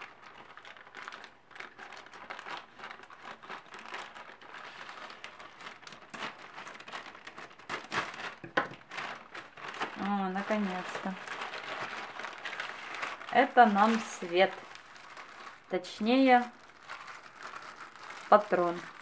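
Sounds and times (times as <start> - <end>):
scissors cutting plastic: 0.0 - 14.6
plastic bag crinkling: 0.0 - 19.0.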